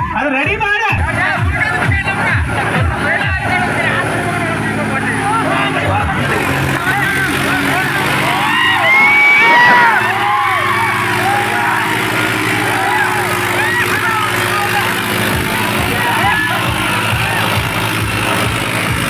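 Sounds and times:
music with thumping bass beat: 0.0 - 7.9, 12.0 - 19.0
diesel engine running: 1.0 - 19.0
crowd shouting and whistling: 7.1 - 19.0.

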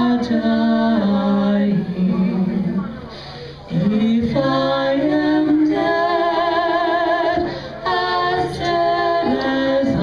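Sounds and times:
two women singing: 0.0 - 3.0, 3.7 - 10.0.

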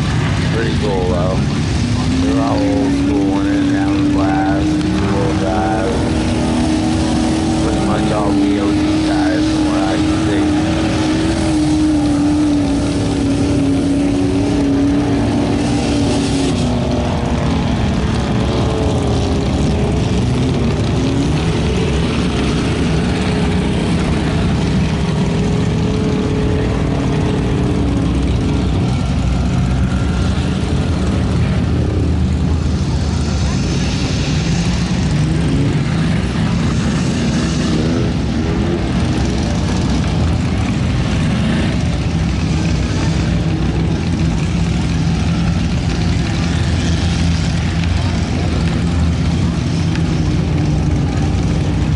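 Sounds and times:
engine revving in mud: 0.0 - 51.9
other truck engines running: 0.0 - 51.9.

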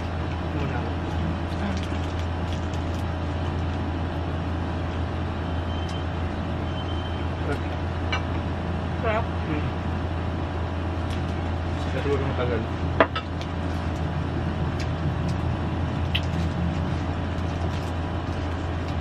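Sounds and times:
constant rumbling background noise: 0.0 - 19.0
steady low hum: 0.0 - 19.0.

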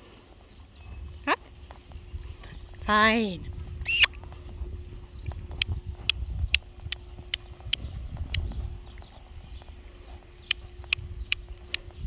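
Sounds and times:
pony hoofbeats trotting on sand: 0.0 - 12.0.

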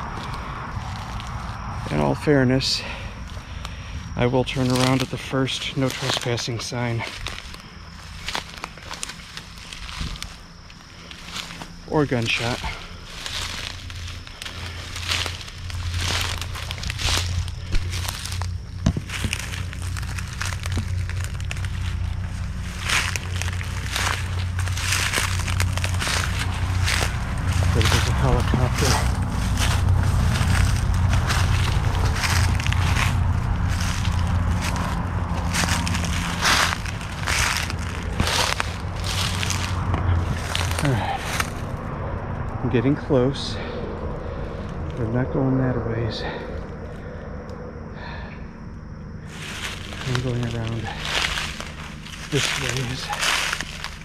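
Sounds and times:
footsteps through leaf litter: 0.0 - 41.7, 49.2 - 54.0
low rumble: 0.0 - 54.0.

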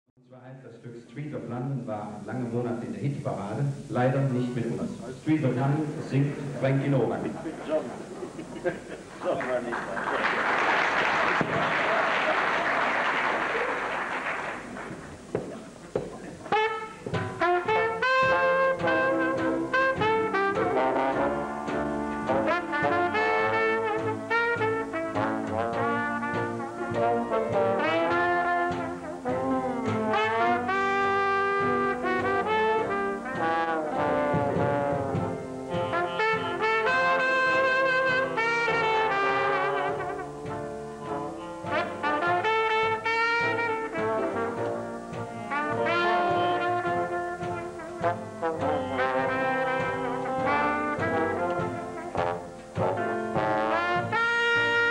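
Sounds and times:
jazz band playing: 2.2 - 54.9
sliding trombone notes: 10.3 - 54.9.

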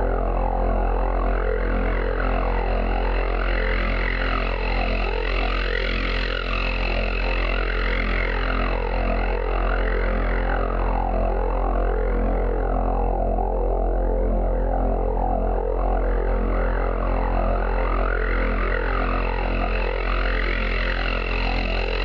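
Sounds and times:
deep electronic drone: 0.0 - 22.0
filtered noise sweeping in pitch: 14.0 - 22.0.

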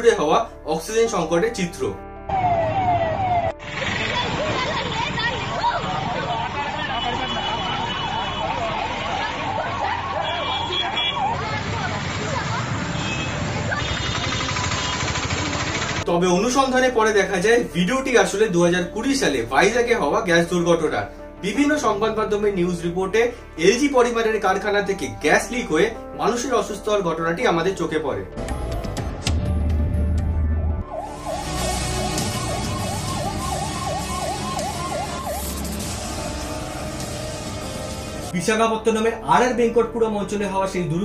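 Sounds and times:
ambulance siren yelping: 2.3 - 12.6, 30.8 - 37.7
dense street rumble with low pulsing: 3.0 - 16.1.

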